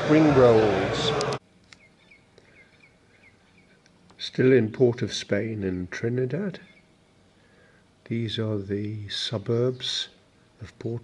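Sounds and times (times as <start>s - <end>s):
bird chirping: 1.7s - 3.8s, 6.5s - 7.2s.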